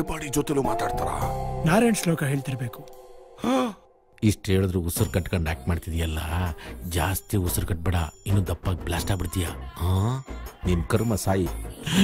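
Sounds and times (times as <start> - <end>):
man sighing: 3.4 - 3.9.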